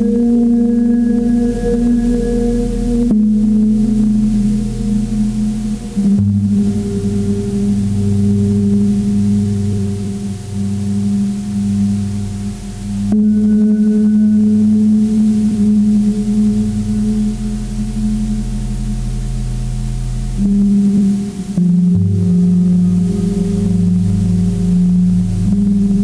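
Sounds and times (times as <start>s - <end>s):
ambient drone music: 0.0s - 26.0s.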